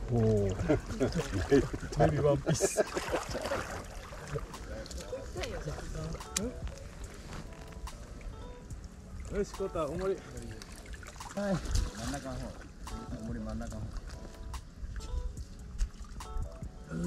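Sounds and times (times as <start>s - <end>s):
people talking: 0.0s - 3.1s, 4.3s - 6.6s, 9.3s - 10.6s, 11.4s - 13.9s
pond water sloshing: 0.0s - 16.6s
people laughing: 0.4s - 4.4s.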